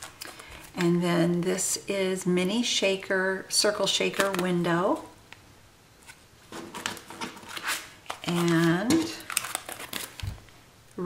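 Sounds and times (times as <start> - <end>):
plastic sleeves crinkling: 0.0 - 1.5, 3.9 - 4.7, 6.0 - 10.6.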